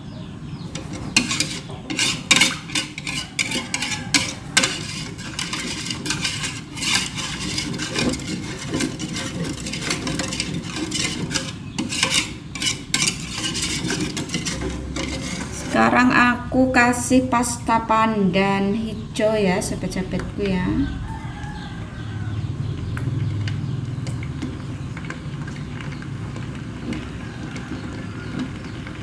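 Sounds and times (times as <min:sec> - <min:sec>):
whisk scraping metal pot: 0:00.7 - 0:17.2, 0:23.4 - 0:29.0.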